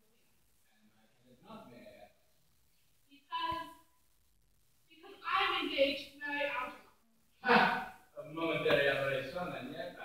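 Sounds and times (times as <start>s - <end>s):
actors speaking dialogue: 0.8s - 2.3s, 4.9s - 10.0s.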